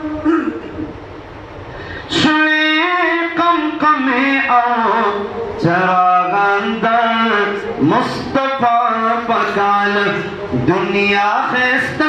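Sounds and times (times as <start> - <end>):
rumbling hissing sound system noise: 0.0 - 12.0.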